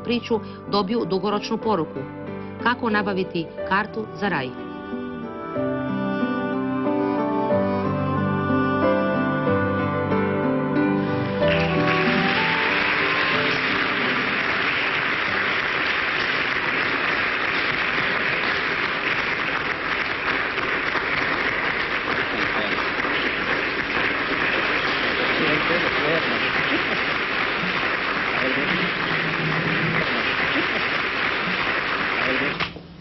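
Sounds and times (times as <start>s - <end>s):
crowd applauding: 11.0s - 32.7s.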